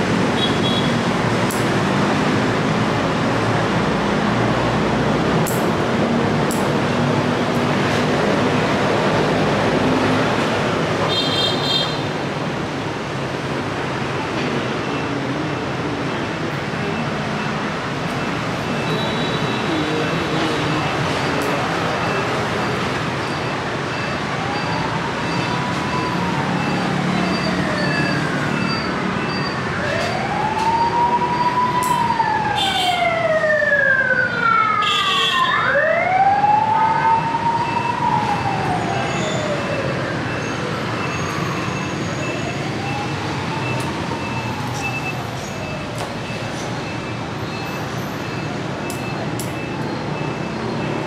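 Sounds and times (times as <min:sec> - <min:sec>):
street traffic noise: 0:00.0 - 0:51.0
emergency siren wailing: 0:15.0 - 0:28.7, 0:29.6 - 0:51.0.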